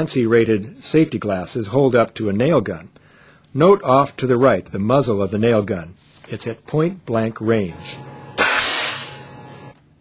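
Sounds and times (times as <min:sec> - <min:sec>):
nail gun shot: 0:08.4 - 0:09.4.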